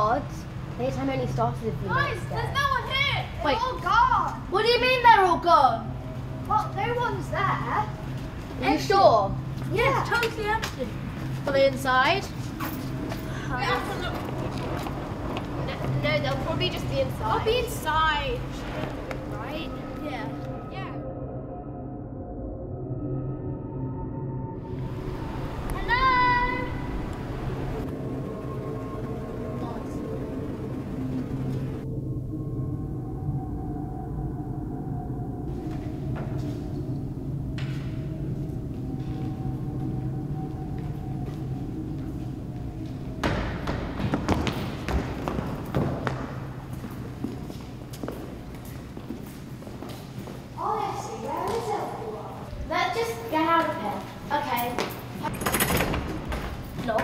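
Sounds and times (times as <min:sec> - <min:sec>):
low held drone: 0:00.0 - 0:54.4
children's voices: 0:25.7 - 0:27.1, 0:50.6 - 0:55.4.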